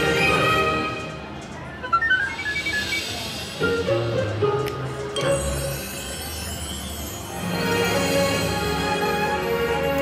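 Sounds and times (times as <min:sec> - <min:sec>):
electronic slot machine music: 0:00.0 - 0:10.0.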